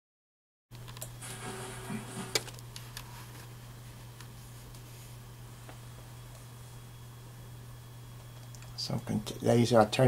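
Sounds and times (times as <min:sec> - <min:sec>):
low electrical hum: 0:00.7 - 0:10.0.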